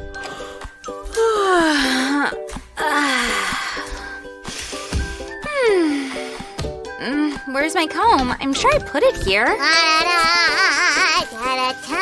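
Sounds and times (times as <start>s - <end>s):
background music: 0.0s - 12.0s
girl moaning: 1.2s - 4.0s, 5.4s - 6.2s.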